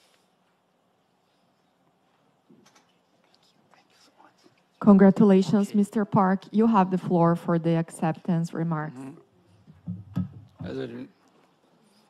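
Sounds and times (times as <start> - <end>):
woman speaking into a microphone: 4.8 - 9.2.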